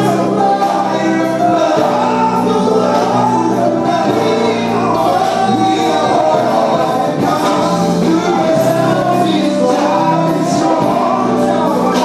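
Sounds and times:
band with electric bass: 0:00.0 - 0:12.0
male vocal group singing: 0:00.0 - 0:12.0.

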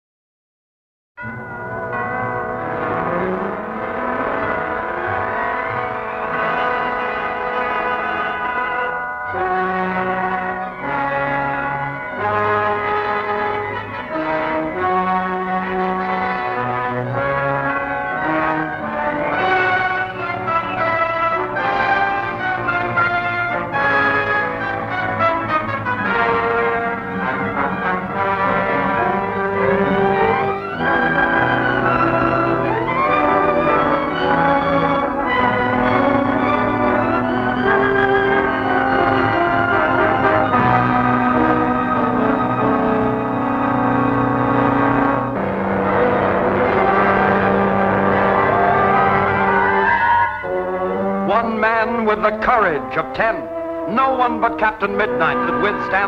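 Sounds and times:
orchestral music led by brass: 0:01.2 - 0:56.0.

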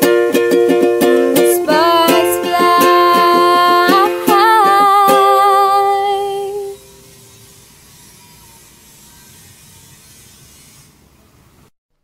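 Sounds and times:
ukulele strum: 0:00.0 - 0:07.1.

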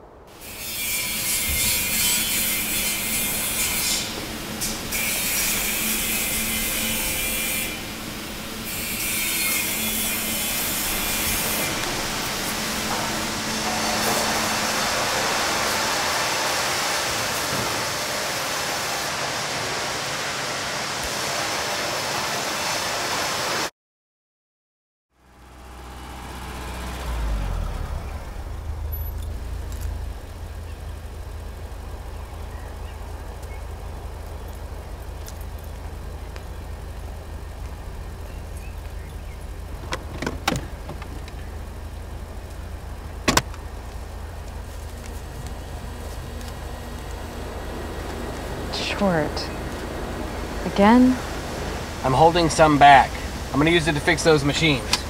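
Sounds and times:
car engine low rumble: 0:00.0 - 0:21.2, 0:25.1 - 0:55.0
harsh machine-shop noise: 0:00.3 - 0:23.7, 0:44.5 - 0:55.0.

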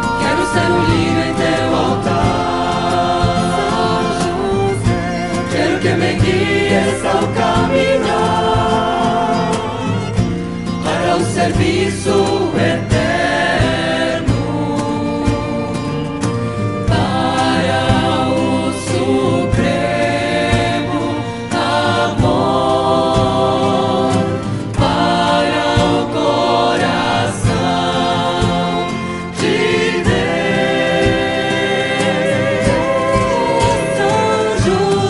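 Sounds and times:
choir singing a hymn: 0:00.0 - 0:35.0
strummed guitars: 0:00.0 - 0:35.0
violins: 0:00.0 - 0:35.0.

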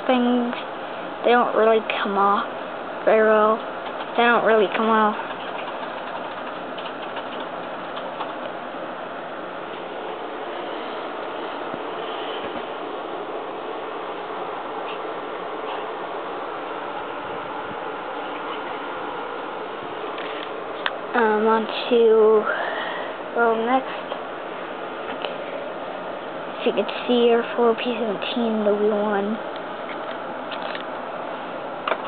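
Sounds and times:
steady hiss-like hum: 0:00.0 - 0:32.0.

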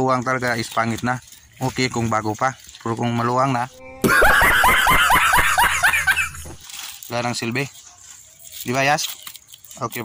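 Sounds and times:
man laughing loudly: 0:03.8 - 0:06.6.

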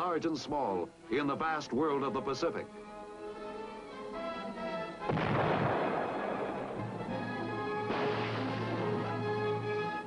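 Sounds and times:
orchestral film music: 0:00.1 - 0:10.0
loud explosion boom: 0:05.1 - 0:06.9, 0:07.8 - 0:08.9.

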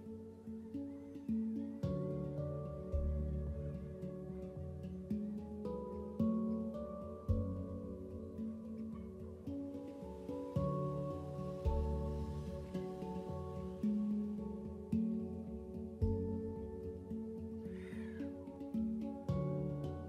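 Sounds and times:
soft new-age music: 0:00.0 - 0:20.0.

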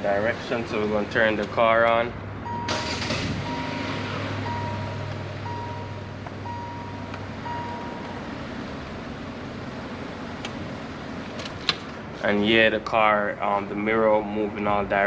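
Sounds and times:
low steady hum: 0:00.0 - 0:11.6
car warning chime beeping: 0:02.4 - 0:09.3.

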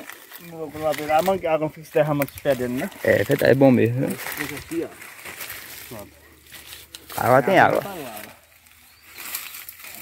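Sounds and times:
man speaking: 0:00.4 - 0:05.0, 0:07.1 - 0:08.4.

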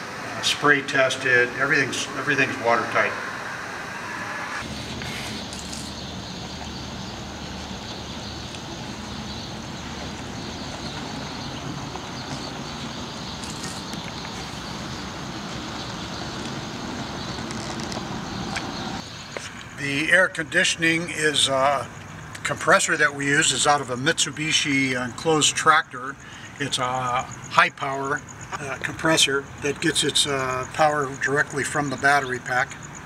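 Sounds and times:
tyre and wind noise: 0:04.6 - 0:19.0.

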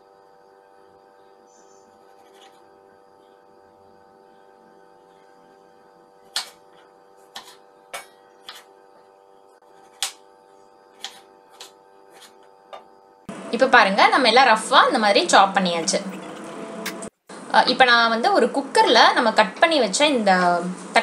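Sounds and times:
knife chopping on wooden board: 0:11.0 - 0:12.4.

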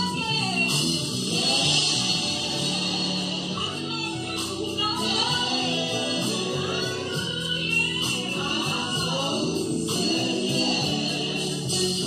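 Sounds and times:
live church band: 0:00.0 - 0:12.0
women singing gospel: 0:00.0 - 0:12.0.

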